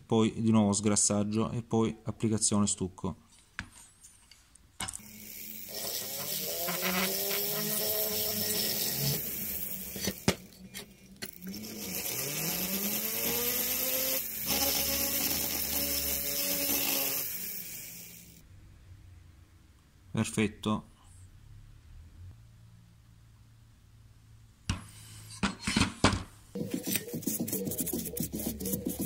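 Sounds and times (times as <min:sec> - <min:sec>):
rotary tool grinding metal: 0:05.0 - 0:18.4, 0:26.6 - 0:29.0.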